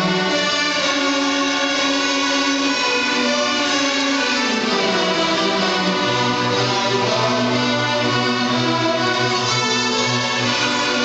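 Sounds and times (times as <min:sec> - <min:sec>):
string orchestra sustained notes: 0:00.0 - 0:11.0.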